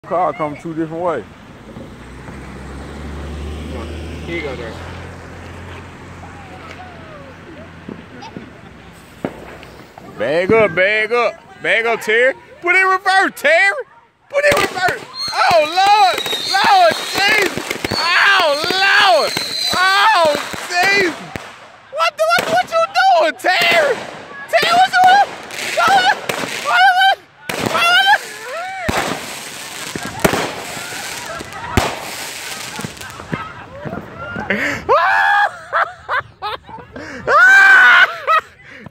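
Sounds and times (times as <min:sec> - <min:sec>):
faint voices outdoors: 0:00.0 - 0:38.9
firework pops: 0:07.8 - 0:10.7, 0:16.1 - 0:21.7, 0:28.9 - 0:34.1
firework hissing: 0:08.8 - 0:10.3, 0:14.5 - 0:21.6, 0:27.5 - 0:33.4
firework shrieking: 0:08.9 - 0:10.3, 0:14.5 - 0:21.5, 0:23.6 - 0:33.4.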